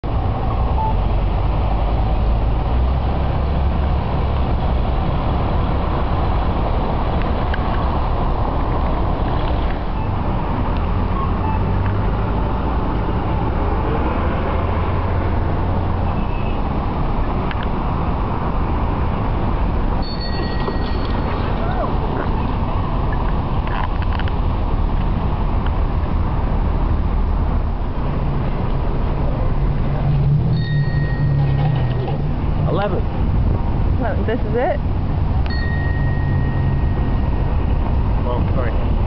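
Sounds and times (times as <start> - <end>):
street traffic rumble: 0.0 - 39.0.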